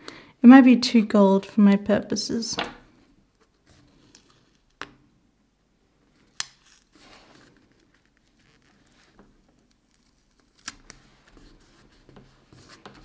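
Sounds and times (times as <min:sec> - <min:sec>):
paper rustling: 0:06.6 - 0:13.0.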